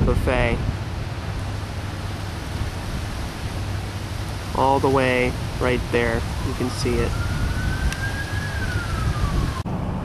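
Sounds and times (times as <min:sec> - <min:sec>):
low rumble of wind or traffic: 0:00.0 - 0:10.0
distant siren wailing: 0:00.6 - 0:10.0.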